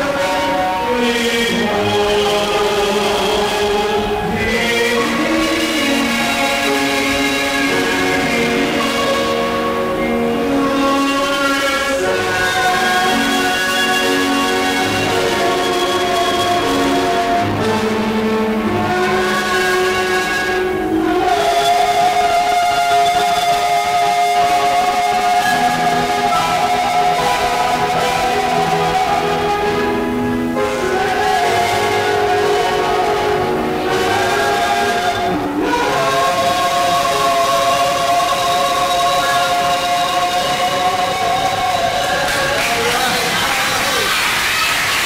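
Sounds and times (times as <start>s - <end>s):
instrumental accompaniment: 0.0s - 45.0s
man and woman singing: 0.0s - 45.0s.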